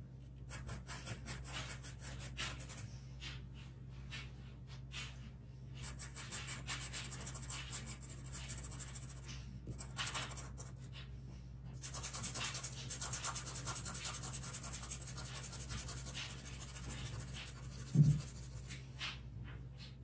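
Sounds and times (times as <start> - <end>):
faint low hum: 0.0 - 20.0
charcoal scratching on paper: 0.3 - 3.4, 5.8 - 11.1, 11.8 - 19.2.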